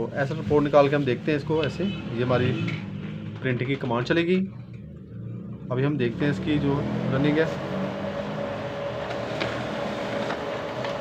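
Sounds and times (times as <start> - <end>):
laser printer whirring: 8.4 - 11.0.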